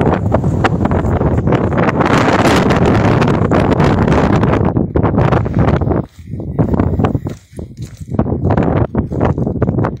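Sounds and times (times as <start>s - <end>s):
wind buffeting microphone: 0.0s - 10.0s
footsteps on stony ground: 4.6s - 10.0s.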